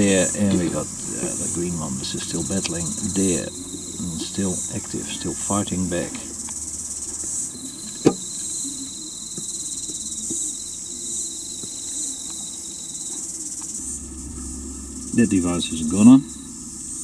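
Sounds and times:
faint thin whine: 0:00.0 - 0:17.0
insects trilling: 0:00.0 - 0:17.0.

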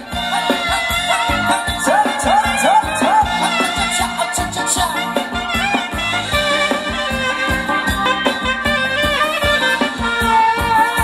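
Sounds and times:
dance band music: 0:00.0 - 0:11.0.

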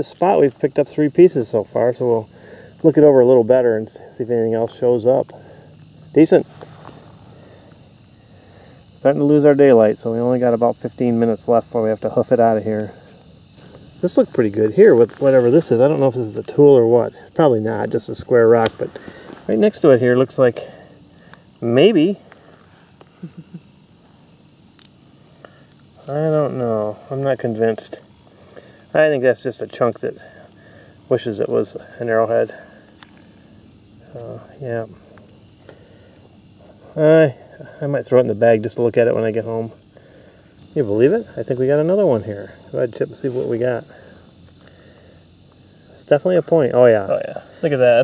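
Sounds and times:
insect chirring: 0:00.0 - 0:48.0
fingers rustling in dry soil: 0:13.0 - 0:17.3.

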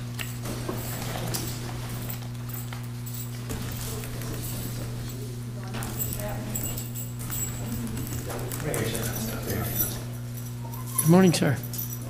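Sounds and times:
low electrical hum: 0:00.0 - 0:12.0
faint voices murmuring: 0:03.6 - 0:11.7.

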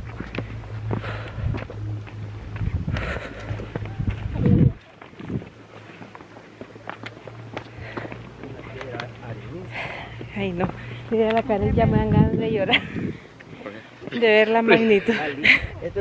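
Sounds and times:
wind buffeting microphone: 0:00.0 - 0:05.6, 0:10.2 - 0:13.8
footsteps on rock: 0:00.0 - 0:09.2.

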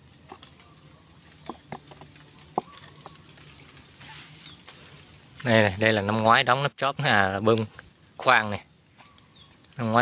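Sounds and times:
footsteps on dry leaves: 0:00.1 - 0:06.5.

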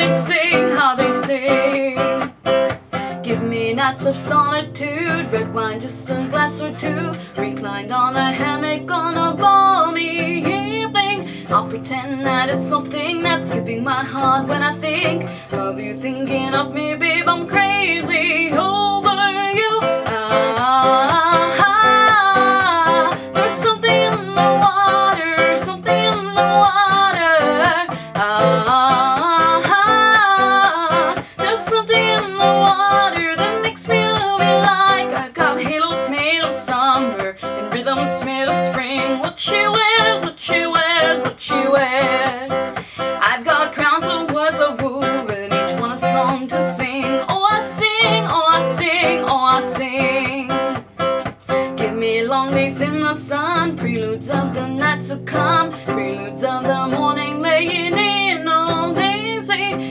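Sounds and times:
strummed classical guitar: 0:00.0 - 0:59.9
woman singing: 0:00.0 - 0:59.9.

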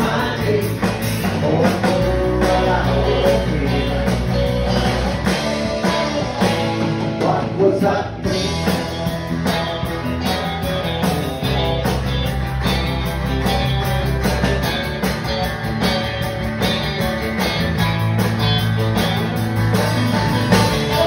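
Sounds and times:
drum kit steady beat: 0:00.0 - 0:21.0
live country band playing: 0:00.0 - 0:21.0.

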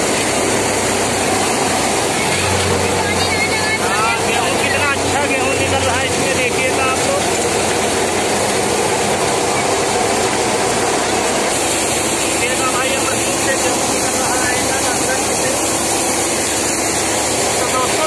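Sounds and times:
thresher mechanical din: 0:00.0 - 0:18.0
grain pouring: 0:04.5 - 0:18.0.

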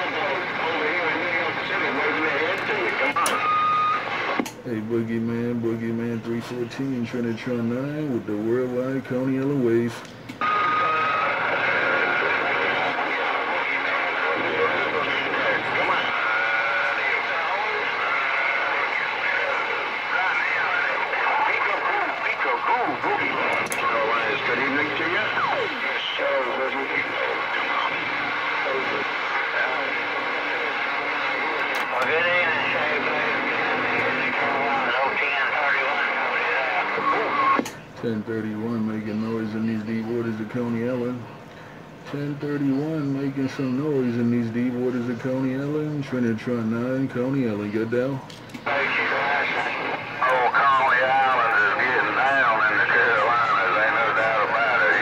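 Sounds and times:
steady radio whistle: 0:00.0 - 0:04.4, 0:10.4 - 0:37.6
garbled voices over radio speaker: 0:00.0 - 0:55.0.

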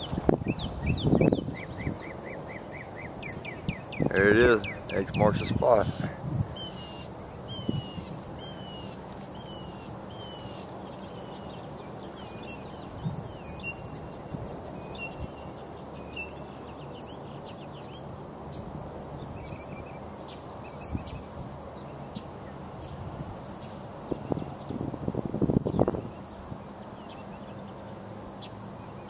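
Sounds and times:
bird chirps: 0:00.0 - 0:24.8
birds calling: 0:00.0 - 0:29.0
outdoor background hiss: 0:00.0 - 0:29.0.

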